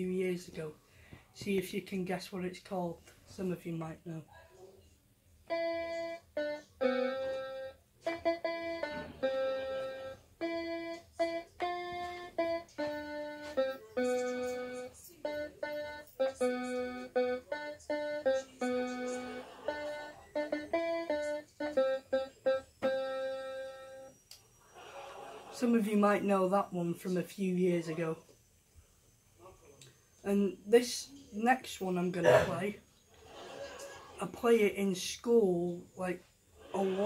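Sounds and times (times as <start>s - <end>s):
electronic keyboard melody: 5.4s - 24.3s.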